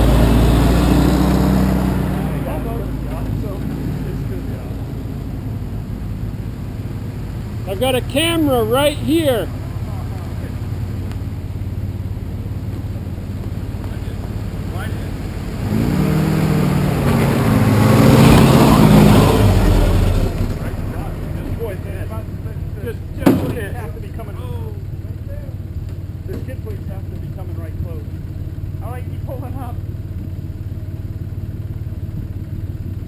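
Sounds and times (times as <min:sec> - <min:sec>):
engine revving up a rock: 0:00.0 - 0:05.0, 0:13.8 - 0:22.2
off-road engines idling: 0:00.0 - 0:33.0.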